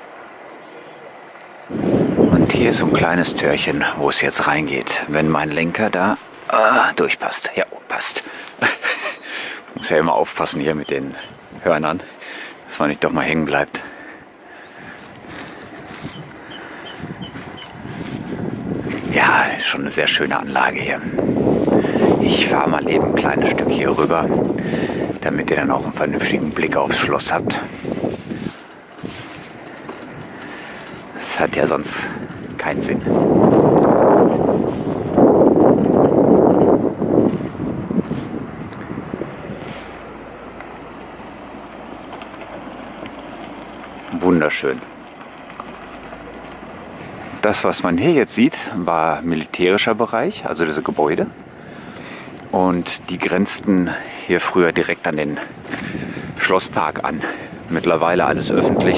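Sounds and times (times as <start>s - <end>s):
wind rushing over microphone: 1.2s - 7.3s, 9.6s - 12.2s, 12.8s - 58.9s
bicycle tyres rolling on paving: 8.0s - 58.9s.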